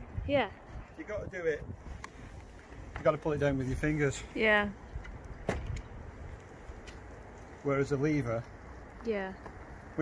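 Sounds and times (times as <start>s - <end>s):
quiet outdoor background: 0.0s - 10.0s.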